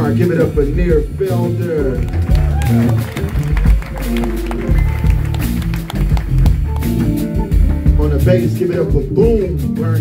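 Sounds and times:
drums and cymbals: 0.0s - 10.0s
electric bass line: 0.0s - 10.0s
keyboard chords: 1.0s - 9.8s.

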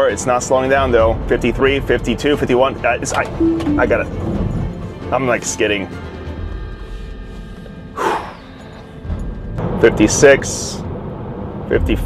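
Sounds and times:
person exhaling sharply: 8.0s - 8.4s.

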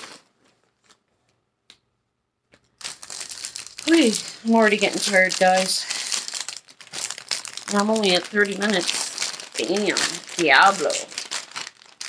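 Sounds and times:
plastic packaging crinkling: 0.0s - 1.1s, 2.6s - 12.0s.

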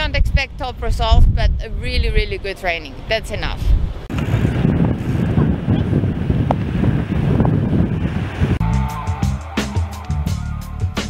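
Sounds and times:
wind buffeting microphone: 0.0s - 8.6s
surf breaking on rocks: 4.1s - 8.6s
music: 8.6s - 11.0s.

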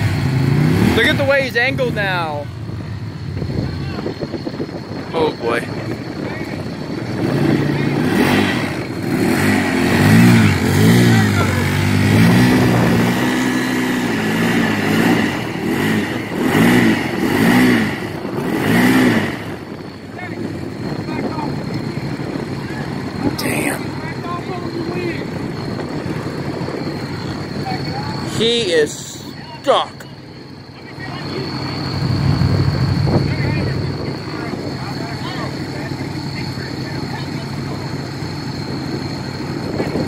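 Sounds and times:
utility vehicle engine revving: 0.0s - 40.0s.

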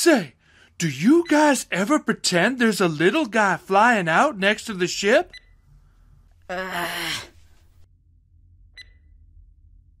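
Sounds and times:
faint low hum: 5.3s - 10.0s.

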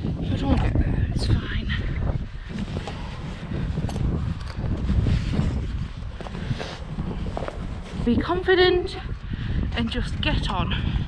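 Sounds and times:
wind buffeting a microphone: 0.0s - 11.0s
faint handling and rustling: 2.4s - 8.4s.

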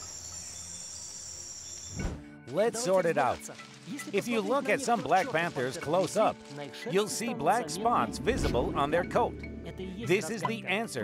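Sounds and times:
high-pitched insect-like trill: 0.0s - 2.2s.

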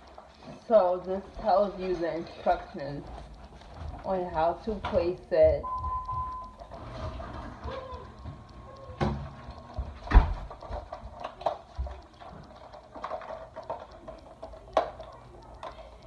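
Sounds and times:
clicks and light knocks: 0.0s - 16.0s.

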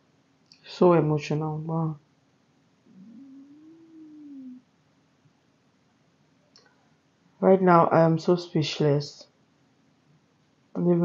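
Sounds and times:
woman humming: 2.9s - 4.6s.

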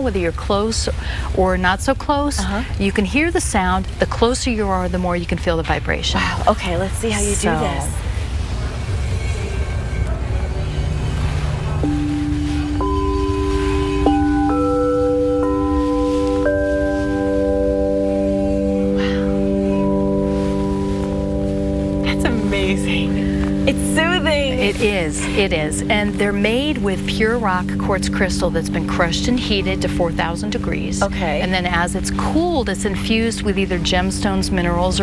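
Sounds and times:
singing bowls ringing: 7.0s - 35.0s.

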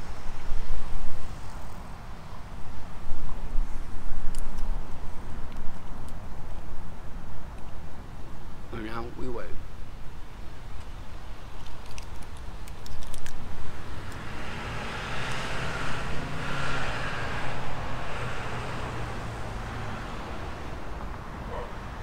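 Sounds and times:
motor vehicle driving past: 13.8s - 22.0s.

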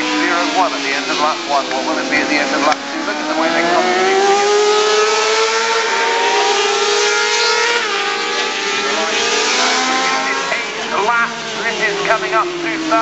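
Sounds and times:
motorcycles revving high: 0.0s - 13.0s.

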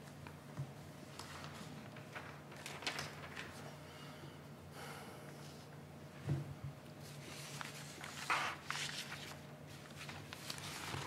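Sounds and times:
low room hum: 0.0s - 11.0s
paper rustling: 1.1s - 3.7s, 7.0s - 11.0s.

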